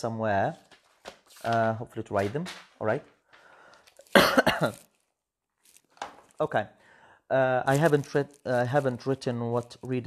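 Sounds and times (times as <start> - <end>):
man coughing: 4.1 - 4.8.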